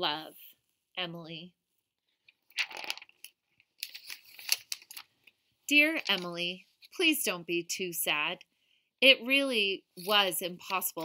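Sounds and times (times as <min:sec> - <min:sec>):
book pages rustling: 0:02.2 - 0:06.9.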